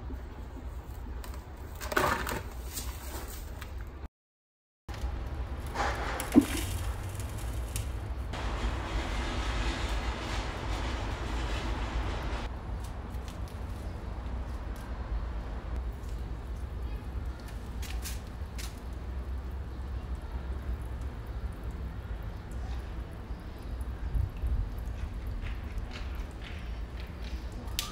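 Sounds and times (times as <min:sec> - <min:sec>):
soil rustling: 0:04.9 - 0:14.9
steady low rumble: 0:05.1 - 0:17.2.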